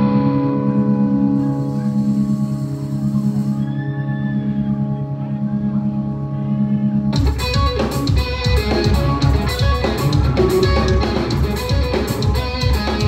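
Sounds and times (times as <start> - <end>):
amplified guitars ringing chord: 0.0 - 13.0.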